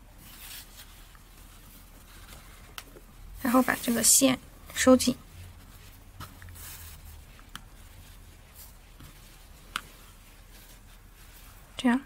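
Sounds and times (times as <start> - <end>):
faint rustling of yarn handling: 0.0 - 12.0.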